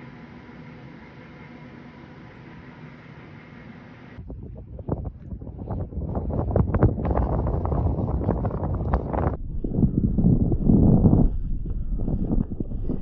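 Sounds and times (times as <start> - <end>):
wind buffeting microphone: 4.2 - 13.0.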